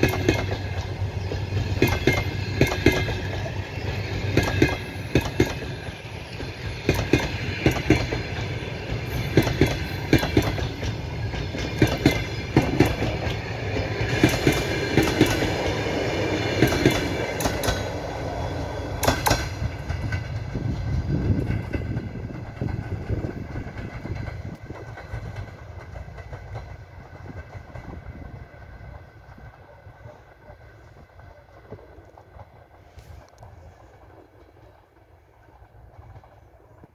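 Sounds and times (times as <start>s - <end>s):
train rumble: 0.0s - 36.9s
train wheels clicking over rail joints: 0.0s - 36.9s.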